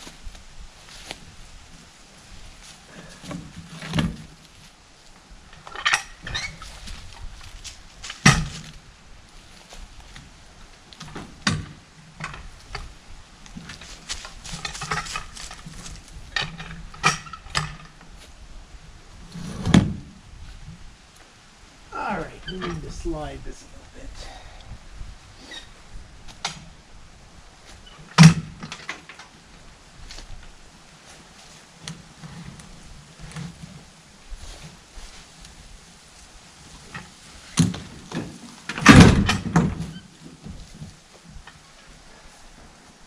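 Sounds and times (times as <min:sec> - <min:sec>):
log scraping on ramp: 0:19.2 - 0:20.8.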